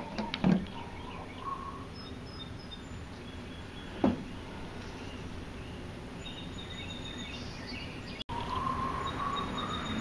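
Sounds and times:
outdoor background noise: 0.0s - 10.0s.

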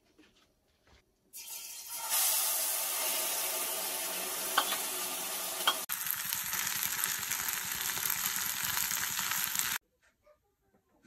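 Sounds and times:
food sizzling in a pan: 1.4s - 9.8s.

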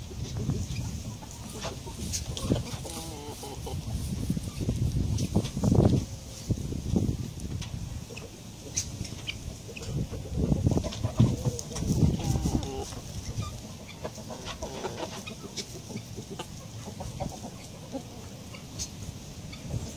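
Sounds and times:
chickens clucking: 0.0s - 19.9s.

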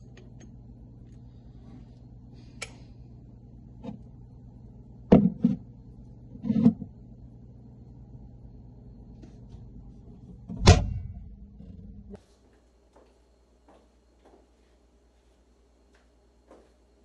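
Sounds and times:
low hum: 0.0s - 12.2s.

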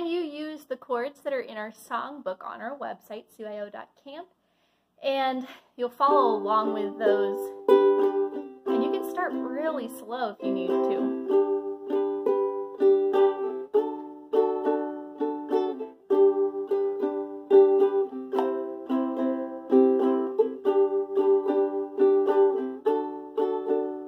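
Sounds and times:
ukulele strumming: 6.0s - 24.0s.

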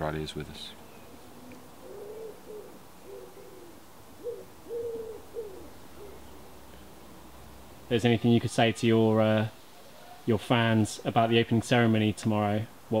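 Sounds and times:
bird cooing: 0.8s - 6.6s, 9.8s - 10.3s.

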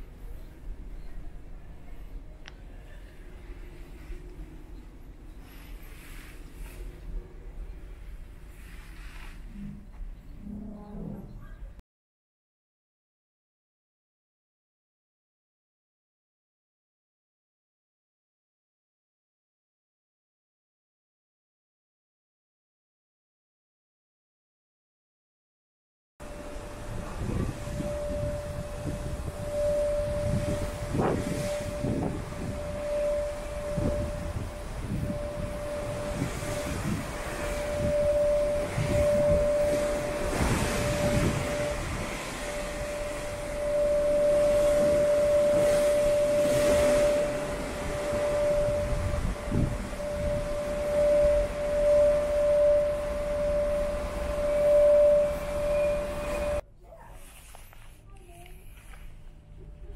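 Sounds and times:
steady high tone: 26.2s - 56.6s
wind buffeting microphone: 26.2s - 56.6s.

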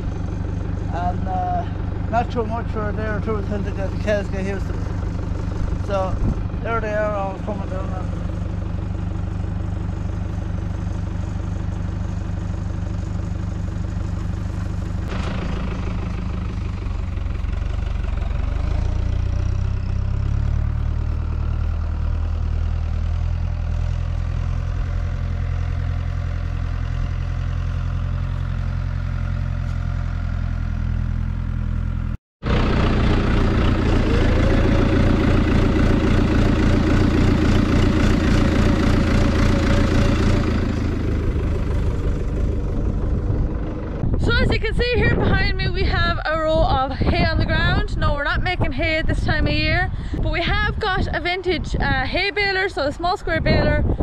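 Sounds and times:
engine idling: 0.0s - 54.0s.

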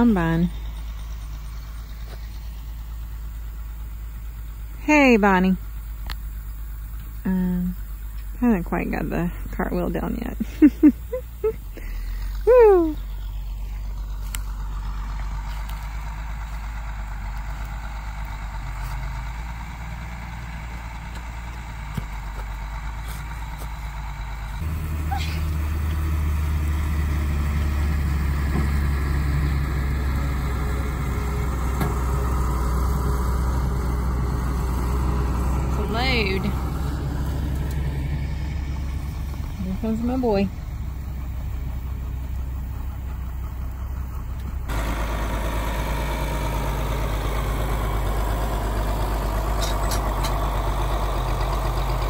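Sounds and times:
truck engine droning: 0.0s - 52.0s.

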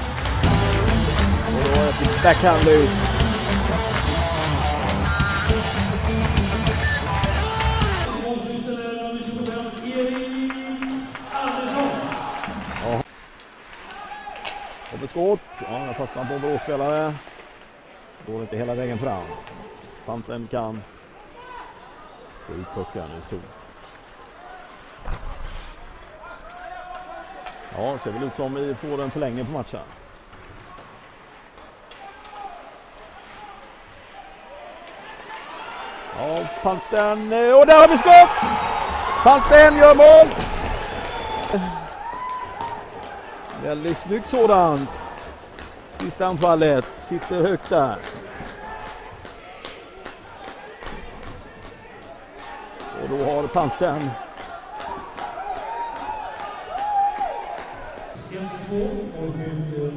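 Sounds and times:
steady drum beat: 0.0s - 8.4s
ice rink general noise: 0.0s - 10.2s, 11.4s - 59.9s.

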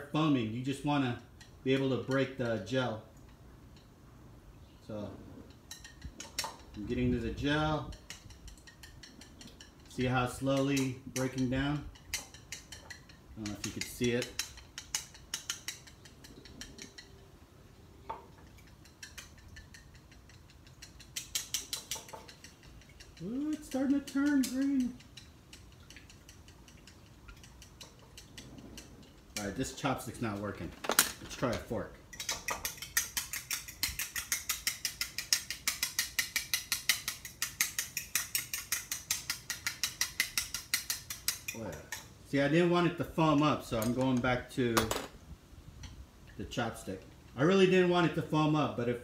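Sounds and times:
fork beating eggs in bowl: 5.5s - 17.3s, 18.3s - 30.6s, 31.4s - 42.2s
chopsticks tapping a bowl: 18.1s - 28.9s.

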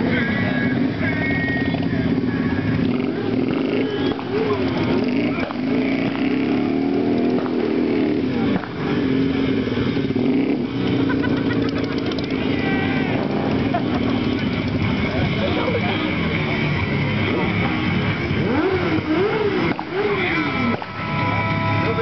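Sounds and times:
people talking: 0.0s - 9.6s, 10.3s - 22.0s
motorcycle engine idling: 0.0s - 22.0s.

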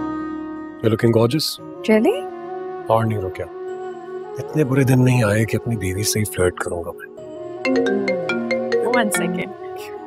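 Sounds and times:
marimba phone ringtone: 7.6s - 9.4s.

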